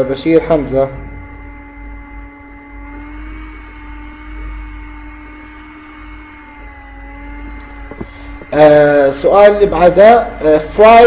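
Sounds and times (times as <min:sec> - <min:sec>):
held tones: 0:00.0 - 0:11.0
small motor whirring: 0:00.0 - 0:11.0.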